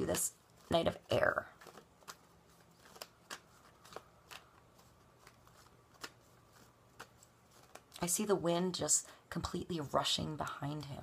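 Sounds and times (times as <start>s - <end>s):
cards being shuffled: 0.0s - 8.2s.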